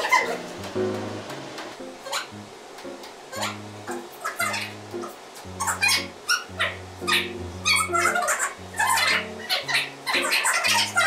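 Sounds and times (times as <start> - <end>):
high squeaky bending melody: 0.0 - 11.0
bass line of short held notes: 0.3 - 11.0.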